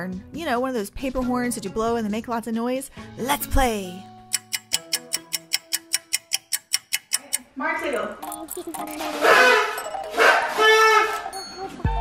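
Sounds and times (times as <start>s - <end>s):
fast ticking timer: 4.3s - 10.4s.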